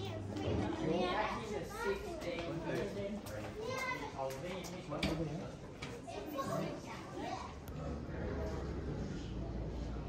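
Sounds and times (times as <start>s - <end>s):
young children talking and calling: 0.0s - 8.2s.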